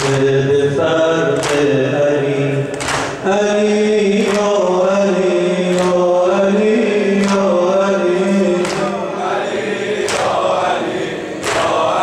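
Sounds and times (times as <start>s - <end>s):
man chanting a lament: 0.0s - 9.9s
chest-beating slaps: 2.7s - 3.2s, 8.6s - 8.9s, 10.0s - 10.4s, 11.4s - 11.8s.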